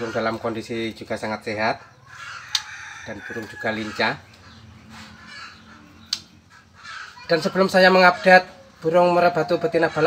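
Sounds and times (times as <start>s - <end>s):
faint bird calls: 1.6s - 10.0s.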